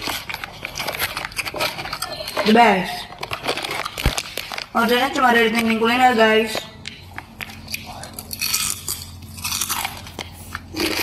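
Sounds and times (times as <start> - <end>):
crunching crispy chip: 8.1 - 11.0.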